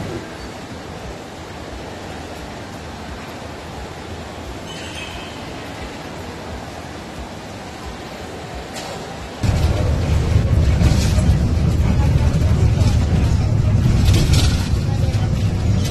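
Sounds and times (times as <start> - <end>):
distant crowd murmur: 0.0 - 15.9.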